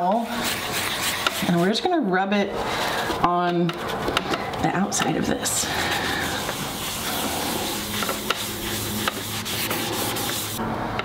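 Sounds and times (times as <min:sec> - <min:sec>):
paper towel rubbing concrete: 0:00.0 - 0:02.0, 0:05.4 - 0:10.6.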